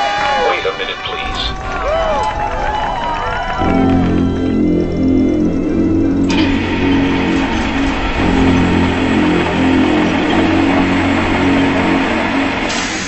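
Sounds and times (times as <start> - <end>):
loud steady rushing noise: 0.0 - 13.0.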